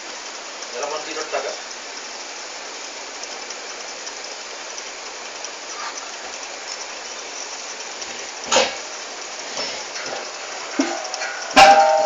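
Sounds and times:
aquarium filter trickling water: 0.0 - 12.0.

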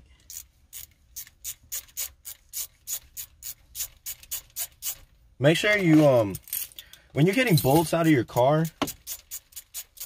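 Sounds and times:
ratchet wrench clicking: 0.2 - 5.0, 8.8 - 10.0.

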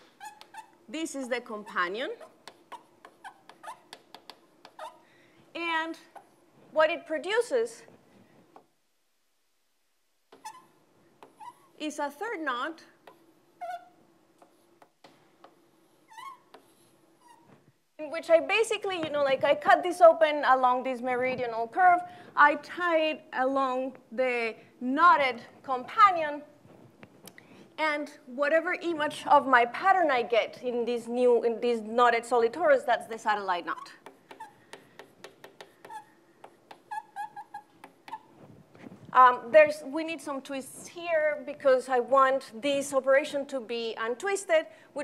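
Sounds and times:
chalk tapping: 0.0 - 0.7, 1.7 - 5.0, 13.0 - 13.3, 14.4 - 17.0, 33.8 - 38.3
chalk squeaking on a blackboard: 0.0 - 0.8, 1.5 - 5.0, 10.3 - 11.8, 13.0 - 17.6, 33.7 - 38.4.

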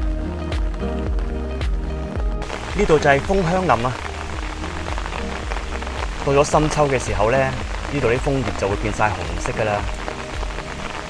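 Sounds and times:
steady rain: 0.0 - 11.0.

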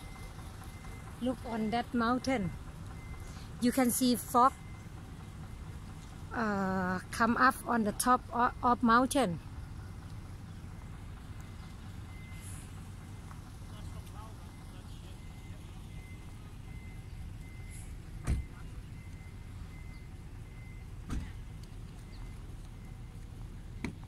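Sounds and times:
low outdoor rumble: 0.0 - 24.0.

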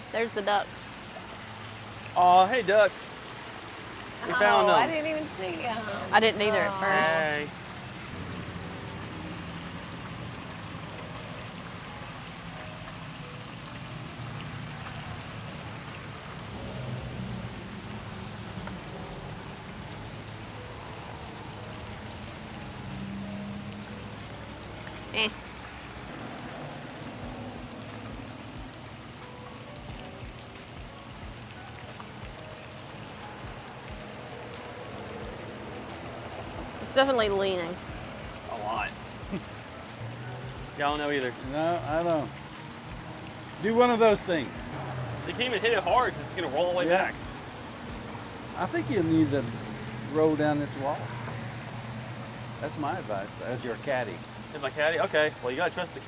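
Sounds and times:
pond fountain splashing: 0.0 - 56.0.

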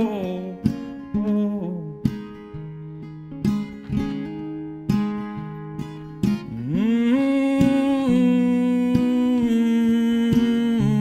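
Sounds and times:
plucked acoustic guitar: 0.0 - 11.0
man humming a melody: 1.2 - 2.0, 6.5 - 11.0.

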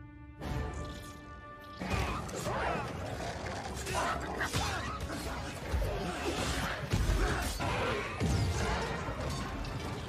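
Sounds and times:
action film score: 0.0 - 10.0.

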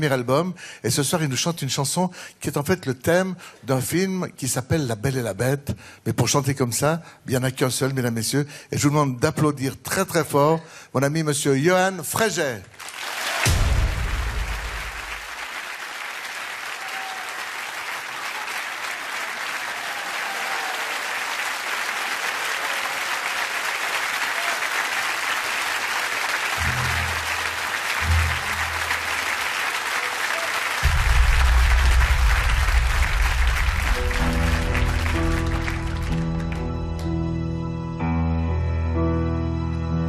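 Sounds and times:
audience applauding: 12.7 - 37.2
deep musical notes: 26.6 - 29.6, 30.8 - 40.0
higher instrument notes: 26.6 - 30.2.

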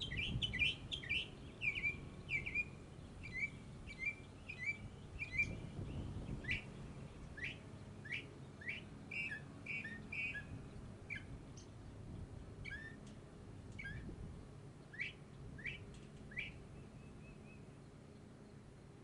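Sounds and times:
songbirds chirping: 0.0 - 19.0.

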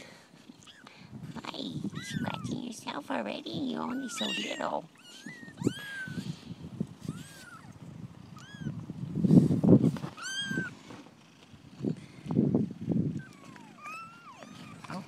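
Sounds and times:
kittens mewing: 1.8 - 2.7, 3.6 - 6.4, 7.0 - 8.8, 10.1 - 10.8, 13.1 - 15.0.

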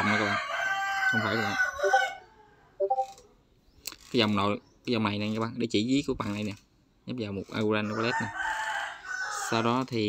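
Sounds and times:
chicken crowing: 0.0 - 2.8, 7.8 - 9.8.

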